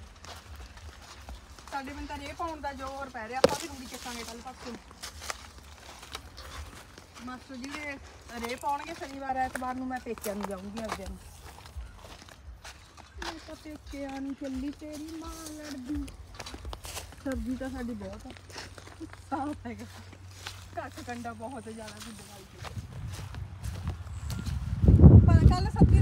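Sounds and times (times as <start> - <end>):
soft footsteps: 0.0 - 26.0
woman speaking: 1.7 - 4.8, 7.2 - 11.2, 13.2 - 16.2, 17.2 - 22.8, 25.2 - 26.0.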